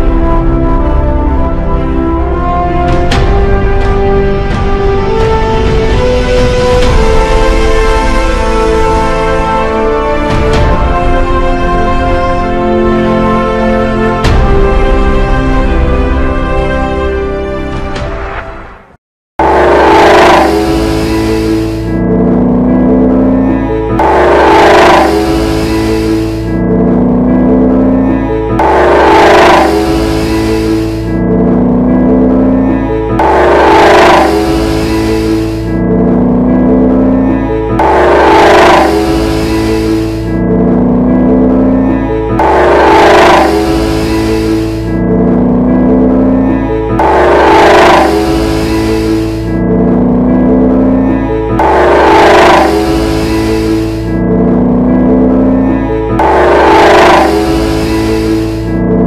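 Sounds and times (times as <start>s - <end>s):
background music: 0.0s - 59.0s
road noise: 0.0s - 59.0s
car engine revving hard: 19.4s - 59.0s.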